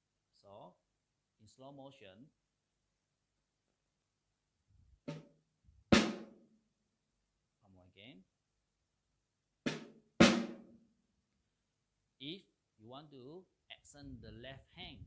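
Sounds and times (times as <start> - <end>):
snare drum flam: 5.9 - 6.4, 9.7 - 10.8.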